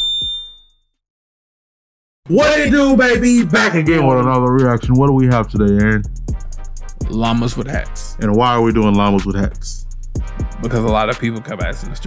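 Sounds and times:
high notification bell ding: 0.0 - 0.7.

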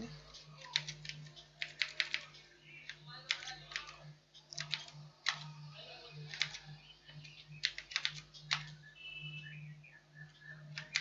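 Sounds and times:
faint steady hum: 0.0 - 11.0
computer keyboard typing: 0.3 - 5.5, 6.2 - 8.8, 10.7 - 11.0.

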